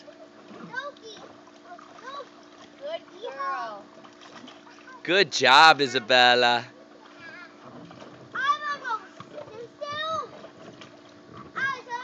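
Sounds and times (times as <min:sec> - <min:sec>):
children splashing in water: 0:00.0 - 0:12.0.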